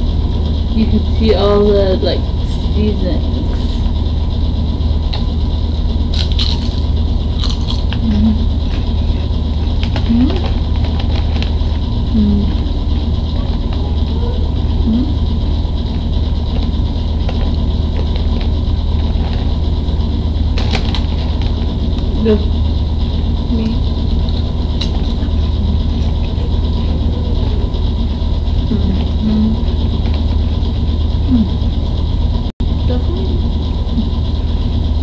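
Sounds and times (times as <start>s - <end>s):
loud low hum: 0.0s - 35.0s
potato chips crunching: 6.1s - 9.0s.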